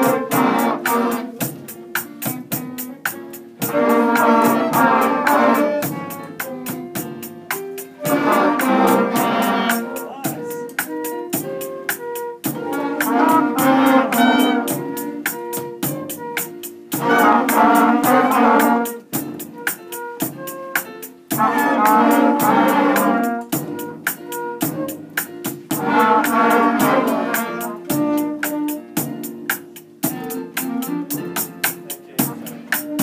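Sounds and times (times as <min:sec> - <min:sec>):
concert band playing: 0:00.0 - 0:33.0
quick clicking beat: 0:00.0 - 0:33.0.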